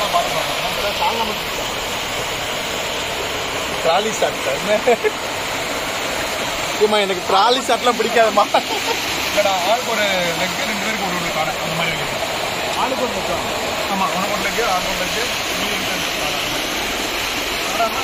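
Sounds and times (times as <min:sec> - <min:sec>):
people talking: 0:00.0 - 0:01.6, 0:03.8 - 0:05.2, 0:06.8 - 0:16.7, 0:17.6 - 0:18.0
stream water rushing over rocks: 0:00.0 - 0:18.0.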